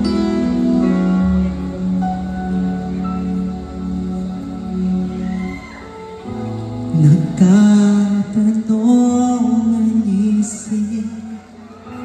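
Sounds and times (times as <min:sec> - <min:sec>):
bass: 0:00.0 - 0:12.0
live band playing ballad: 0:00.0 - 0:12.0.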